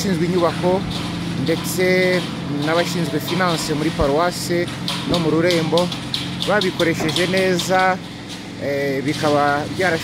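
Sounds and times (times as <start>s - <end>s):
person speaking: 0.0s - 8.0s
steady low hum: 0.0s - 10.0s.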